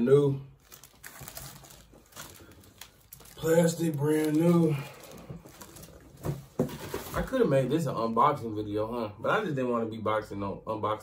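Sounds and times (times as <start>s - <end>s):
plastic bag crinkling: 0.6s - 7.4s.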